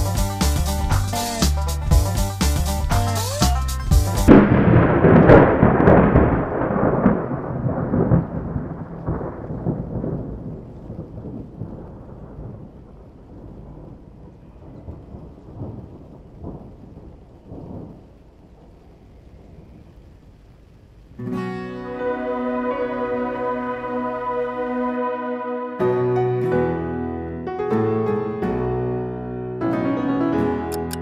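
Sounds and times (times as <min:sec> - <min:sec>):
deep rolling rumble: 0:03.9 - 0:20.4.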